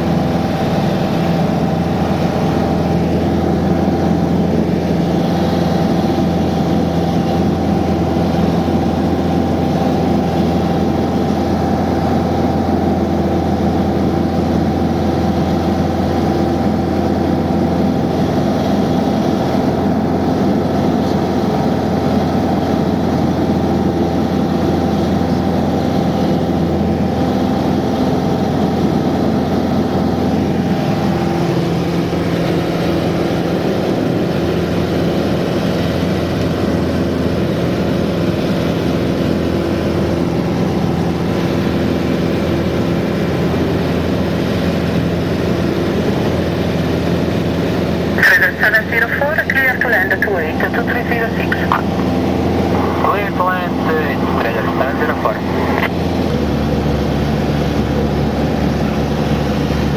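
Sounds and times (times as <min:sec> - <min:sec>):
light aircraft engine droning: 0:00.0 - 0:59.9.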